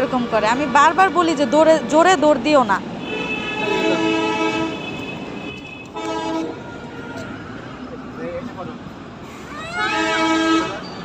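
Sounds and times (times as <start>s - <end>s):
horn blasts: 3.0s - 7.5s, 9.8s - 11.0s.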